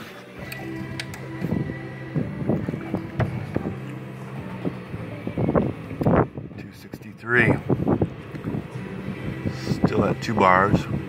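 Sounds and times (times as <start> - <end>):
steady low hum: 0.3 - 11.0
wind on microphone: 1.4 - 11.0.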